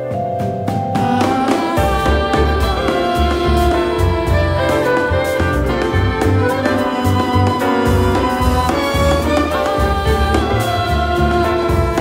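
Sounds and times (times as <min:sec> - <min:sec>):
chamber jazz ensemble playing: 0:00.0 - 0:12.0.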